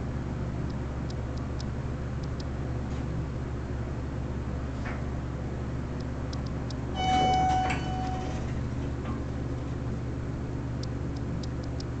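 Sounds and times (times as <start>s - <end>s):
low elevator hum: 0.0s - 12.0s
elevator arrival chime: 6.9s - 8.7s
elevator door clicks: 7.0s - 9.3s.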